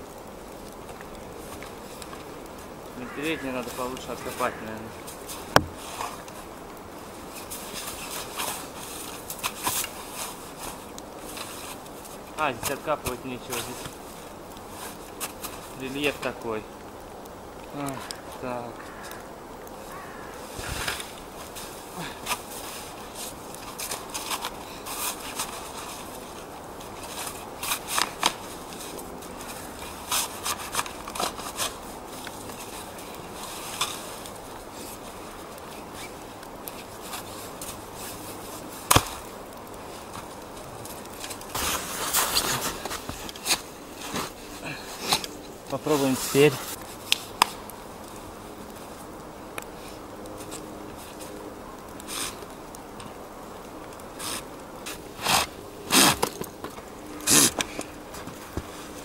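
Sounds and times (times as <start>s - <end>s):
shovel scraping packed snow: 41.5s - 46.8s, 52.1s - 52.4s, 54.2s - 56.4s, 57.3s - 57.7s.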